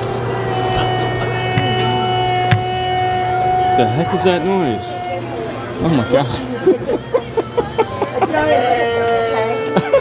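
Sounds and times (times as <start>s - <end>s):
drone of held tones: 0.0s - 5.5s.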